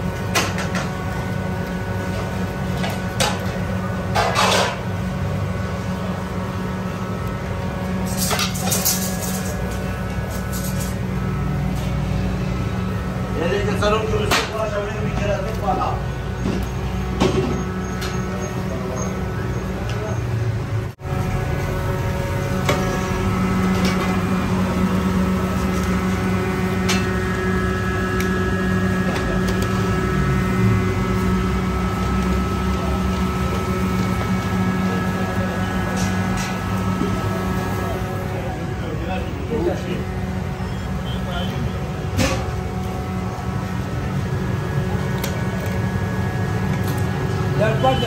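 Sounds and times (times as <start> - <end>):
low machine hum: 0.0 - 48.0.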